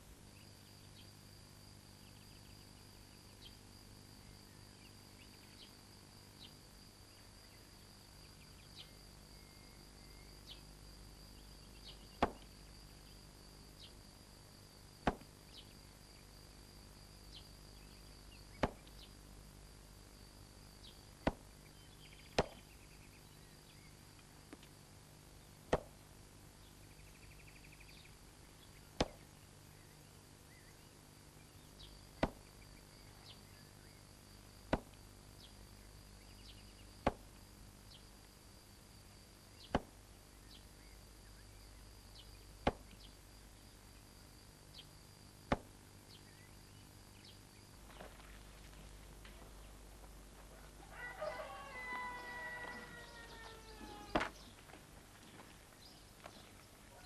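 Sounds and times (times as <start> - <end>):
faint high-pitched whine: 0.0 - 57.0.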